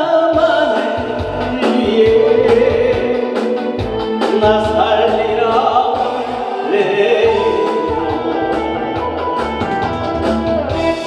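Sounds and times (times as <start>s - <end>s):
man singing into a microphone: 0.0s - 9.1s
recorded backing track: 0.0s - 11.0s.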